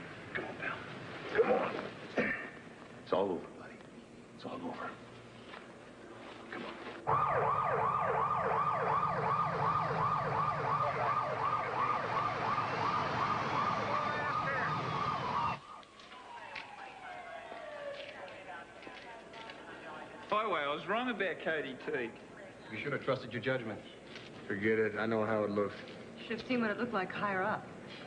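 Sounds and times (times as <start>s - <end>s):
faint siren tone falling: 7.1s - 18.2s
siren yelping: 7.1s - 18.2s.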